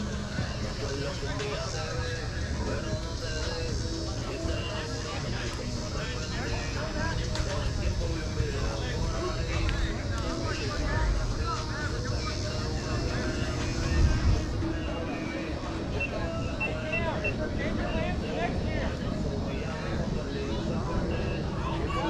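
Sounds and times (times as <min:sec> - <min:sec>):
players calling and chattering: 0:00.0 - 0:22.0.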